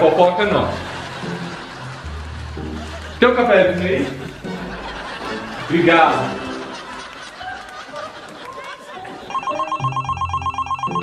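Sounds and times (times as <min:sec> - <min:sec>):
telephone ringing trill: 0:09.3 - 0:11.0.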